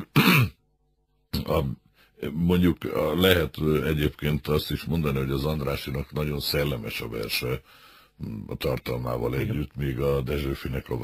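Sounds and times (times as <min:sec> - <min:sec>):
man clearing his throat: 0:00.0 - 0:00.6.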